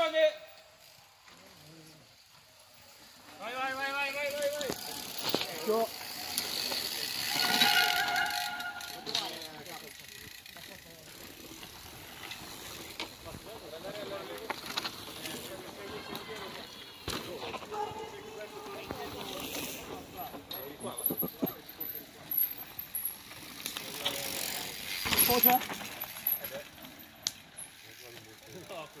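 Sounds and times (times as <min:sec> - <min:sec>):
bike tyres on dirt trail: 0:00.0 - 0:29.0
bicycle freewheel clicking: 0:00.5 - 0:15.5, 0:21.6 - 0:29.0
spectators' voices: 0:02.7 - 0:29.0.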